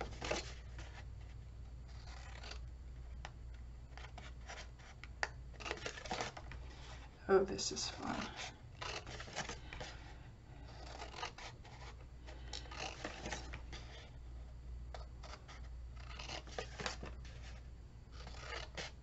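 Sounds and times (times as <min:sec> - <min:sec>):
low steady hum: 0:00.0 - 0:19.0
scissors cutting paper: 0:02.0 - 0:02.6, 0:05.6 - 0:06.4, 0:08.0 - 0:09.8, 0:10.7 - 0:13.6, 0:15.2 - 0:17.1, 0:18.1 - 0:19.0.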